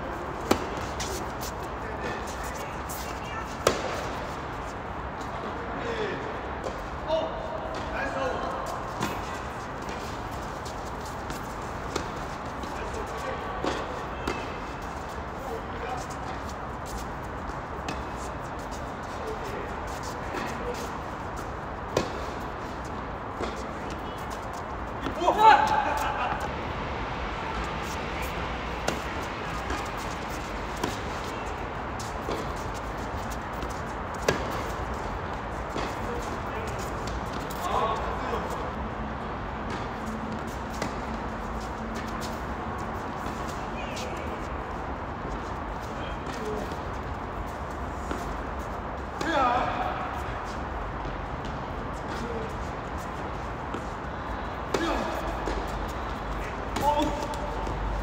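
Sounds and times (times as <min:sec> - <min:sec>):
tennis balls struck by racquets: 0:00.4 - 0:02.3, 0:03.5 - 0:04.4, 0:08.9 - 0:15.1, 0:21.6 - 0:26.6, 0:27.6 - 0:38.5, 0:39.2 - 0:43.6, 0:54.6 - 0:58.0.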